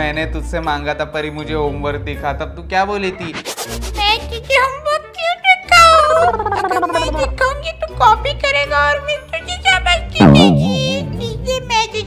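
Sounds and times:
wavering tone sliding down: 6.4s - 7.2s, 10.2s - 11.2s
short vocal sounds: 10.2s - 11.2s.

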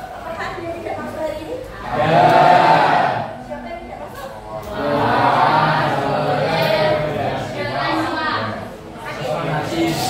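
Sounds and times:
many voices singing in unison: 1.9s - 3.4s, 4.7s - 7.3s.

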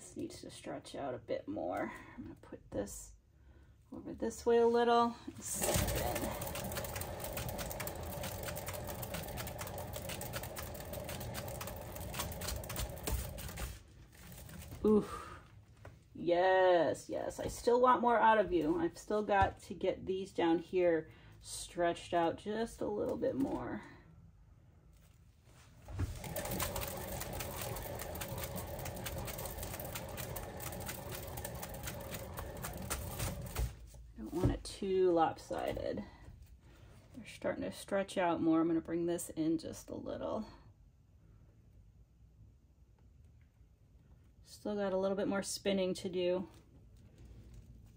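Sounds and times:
spinner rattling whir: 5.4s - 15.0s, 25.9s - 33.8s.

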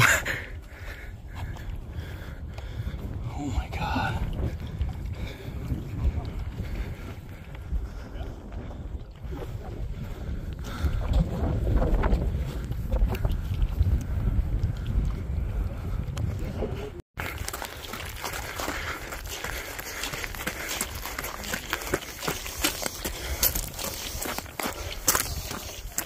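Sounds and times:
wind rumbling on microphone: 0.0s - 26.0s
footsteps crunching on rocky ground: 17.2s - 26.0s.

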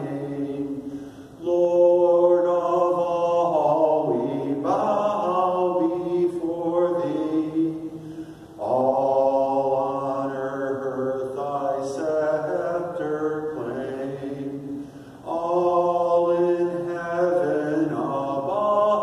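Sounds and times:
man singing a hymn: 0.0s - 19.0s.

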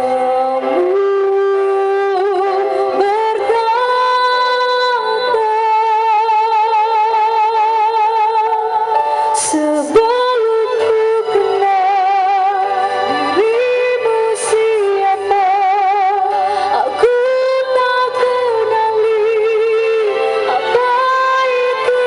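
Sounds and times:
musical accompaniment: 0.0s - 22.0s
woman singing with vibrato: 0.0s - 22.0s.

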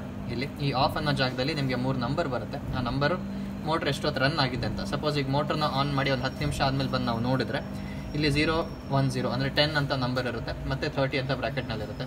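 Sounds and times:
steady low hum: 0.0s - 12.0s
man speaking: 0.3s - 12.0s.

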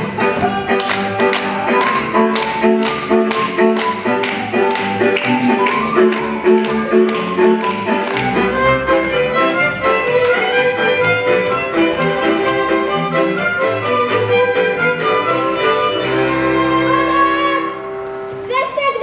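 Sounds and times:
folk band with fiddles: 0.0s - 18.4s
hand claps on the beat: 0.7s - 9.2s.

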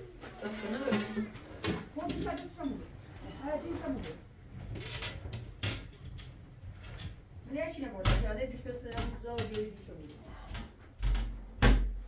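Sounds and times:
people talking: 0.4s - 1.4s, 2.0s - 4.2s, 7.5s - 10.5s.

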